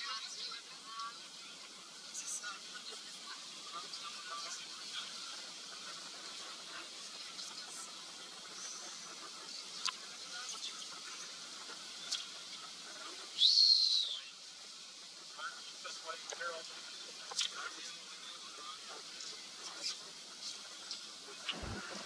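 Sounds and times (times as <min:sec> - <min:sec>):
background hiss: 0:00.0 - 0:22.0
faint clicks: 0:06.2 - 0:11.3, 0:17.2 - 0:18.0.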